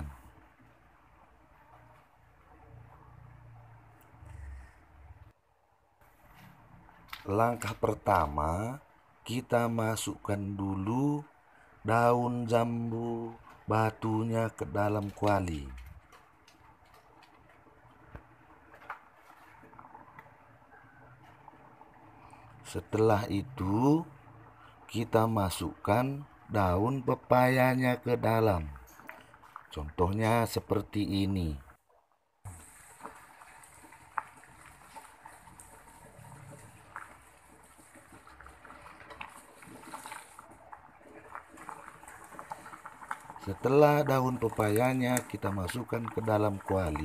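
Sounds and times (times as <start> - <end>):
water boiling in a metal pot: 0.0 - 5.4, 6.0 - 47.0
small pops and ticks: 14.8 - 20.4, 36.5 - 47.0.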